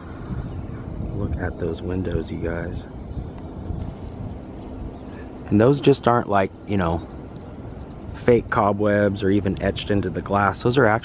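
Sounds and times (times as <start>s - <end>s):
low outdoor rumble on microphone: 0.0s - 11.0s.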